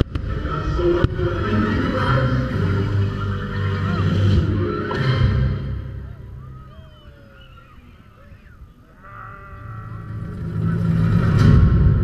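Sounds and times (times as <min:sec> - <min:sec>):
music over loudspeakers: 0:00.1 - 0:06.3.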